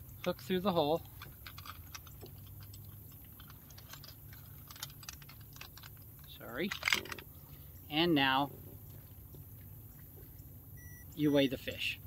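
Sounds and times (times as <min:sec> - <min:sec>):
short high electronic beep: 0:10.8 - 0:11.1.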